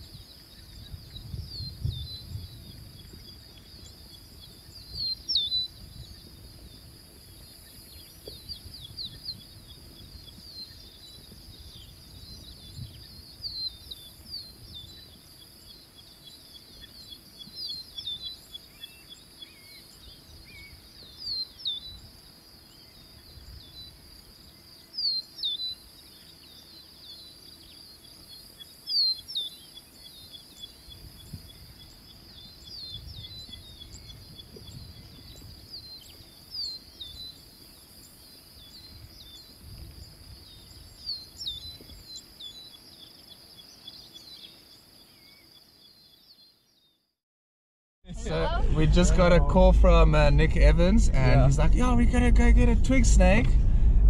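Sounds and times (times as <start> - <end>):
high insect drone: 0.0 - 46.5
birds chirping: 0.0 - 47.0
soft low rumbles: 48.1 - 54.0.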